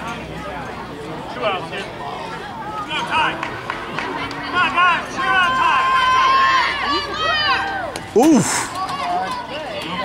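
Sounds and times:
spectators shouting and cheering: 2.2s - 10.0s.

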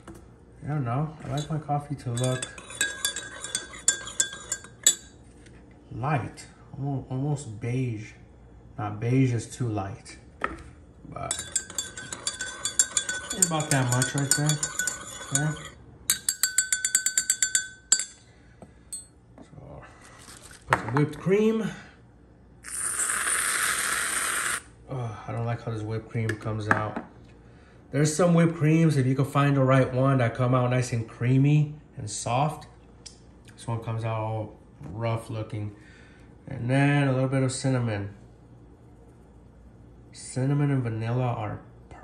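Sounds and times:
spoon clinking in ceramic mug: 1.4s - 5.1s, 11.3s - 18.2s.

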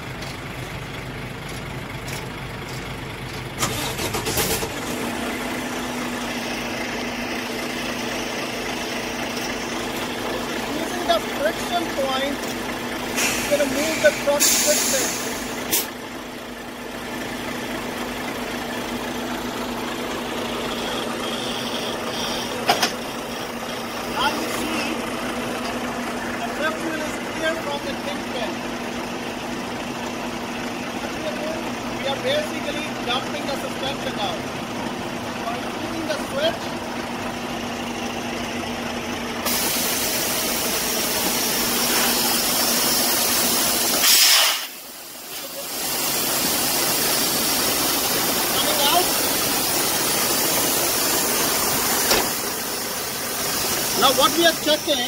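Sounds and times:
diesel truck engine idling: 0.0s - 55.0s
air hissing from suspension: 13.0s - 16.0s, 39.4s - 54.6s.

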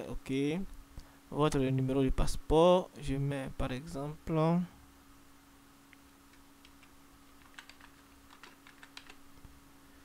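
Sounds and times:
faint low hum: 0.0s - 10.0s
keyboard typing: 6.3s - 9.2s.

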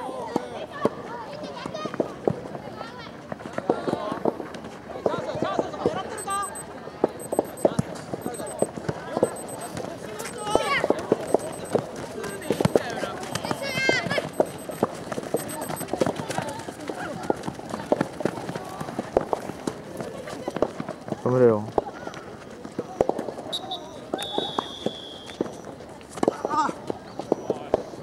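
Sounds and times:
referee whistle: 23.5s - 25.4s.

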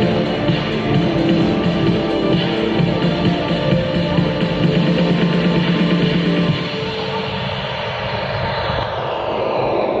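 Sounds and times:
steady rushing jet-like noise: 0.0s - 10.0s.

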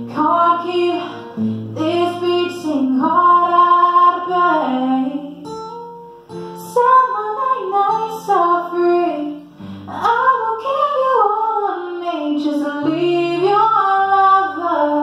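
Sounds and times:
woman singing sliding notes: 0.0s - 5.4s, 6.6s - 15.0s
acoustic guitar: 0.0s - 15.0s.

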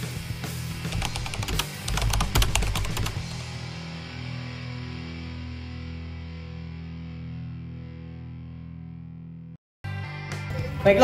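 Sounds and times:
background music: 0.0s - 6.0s, 9.9s - 11.0s
keyboard typing clicks: 0.9s - 3.2s.

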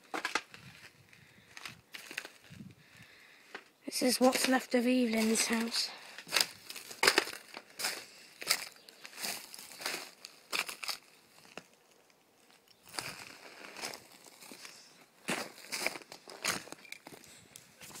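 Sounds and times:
footsteps crunching over debris: 0.0s - 18.0s.

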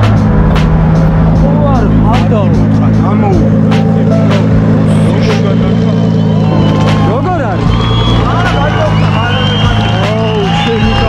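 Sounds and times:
crowd babble: 0.0s - 11.0s
vehicle engine idling: 0.0s - 11.0s.

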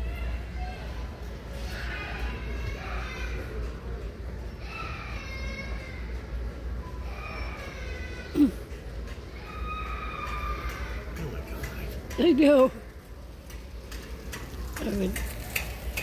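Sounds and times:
faint distant voices or music: 0.0s - 16.0s
low store rumble: 0.0s - 16.0s.

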